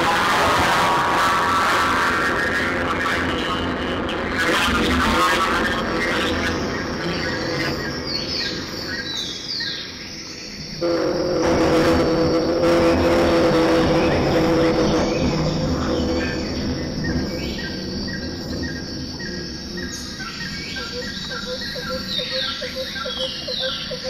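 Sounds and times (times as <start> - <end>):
experimental noise: 0.0 - 24.0
steady droning tones: 0.0 - 24.0.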